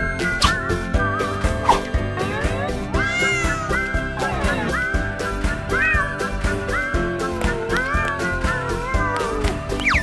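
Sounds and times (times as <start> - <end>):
cartoon cat meowing: 2.9 - 5.1, 5.7 - 10.0.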